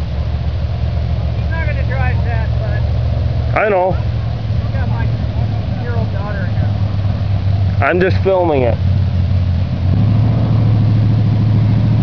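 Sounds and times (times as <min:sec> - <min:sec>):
distant race car engine drone: 0:00.0 - 0:12.0.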